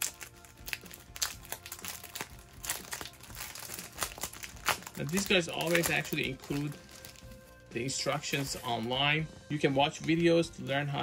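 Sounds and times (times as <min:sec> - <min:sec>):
plastic wrap crinkling: 0:00.0 - 0:09.0.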